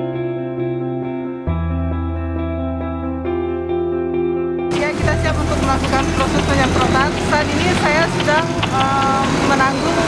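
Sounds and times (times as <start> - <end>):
low engine hum: 4.7 - 10.0
voices talking: 4.7 - 10.0.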